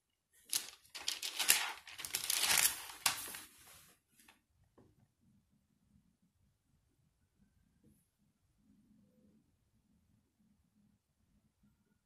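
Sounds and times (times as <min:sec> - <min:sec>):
thin pages rustling and flicking: 0:00.5 - 0:03.9.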